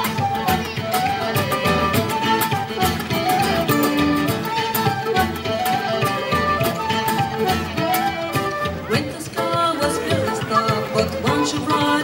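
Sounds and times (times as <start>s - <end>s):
fiddle melody: 0.0s - 12.0s
frame drum beat: 0.0s - 12.0s
guitar accompaniment: 0.0s - 12.0s.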